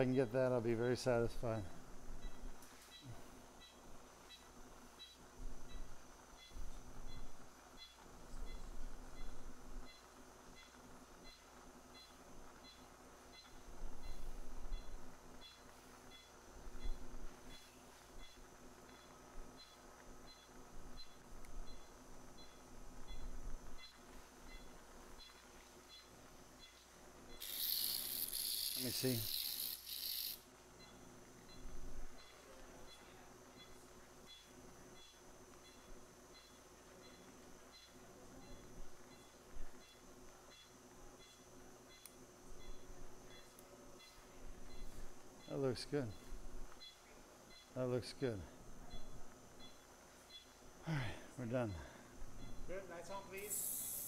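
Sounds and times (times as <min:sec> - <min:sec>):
patient monitor beeps: 0:01.6 - 0:08.6, 0:09.2 - 0:42.0, 0:42.6 - 0:50.5, 0:51.6 - 0:53.7
burst of hissing: 0:53.4 - 0:54.0.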